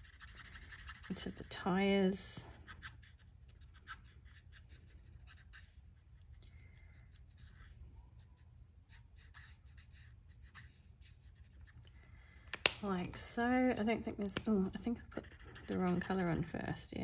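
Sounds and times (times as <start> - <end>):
marker nib scratching on card: 0.0 - 1.5, 2.6 - 6.3, 7.0 - 11.8, 14.4 - 16.6.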